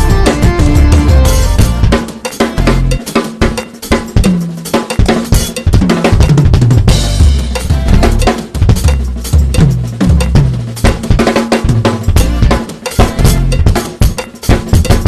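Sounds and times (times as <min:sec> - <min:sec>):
drum kit playing: 0:00.0 - 0:15.0.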